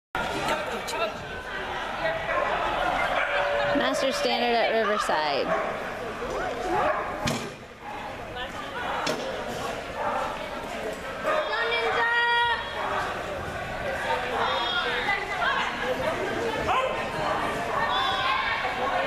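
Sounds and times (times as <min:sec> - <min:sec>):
voices in a large hall: 0:00.2 - 0:19.0.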